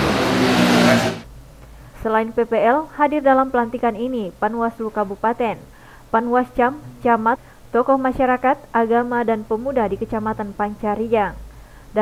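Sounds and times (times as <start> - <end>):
loud steady rushing noise: 0.0 - 1.3.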